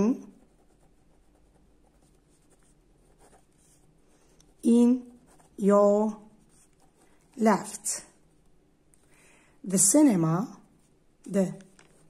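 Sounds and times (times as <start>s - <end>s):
pen writing on paper: 0.4s - 3.9s.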